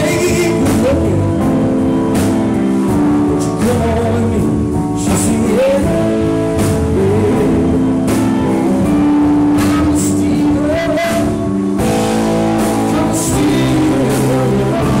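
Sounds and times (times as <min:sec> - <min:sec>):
drum kit: 0:00.0 - 0:15.0
electric guitars: 0:00.0 - 0:15.0
keyboards: 0:00.0 - 0:15.0.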